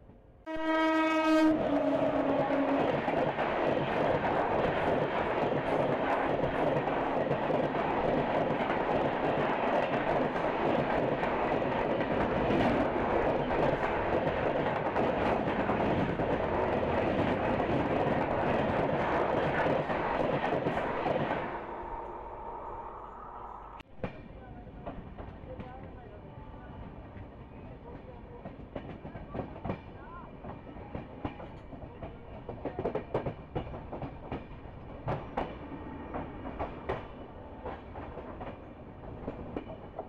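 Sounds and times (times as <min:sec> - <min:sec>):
passing trains rushing: 0:00.0 - 0:40.0
train horn: 0:00.4 - 0:02.9.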